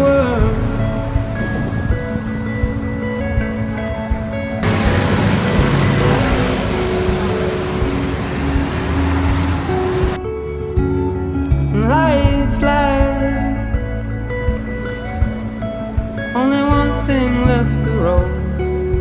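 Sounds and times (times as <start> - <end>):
music with sustained notes: 0.0 - 19.0.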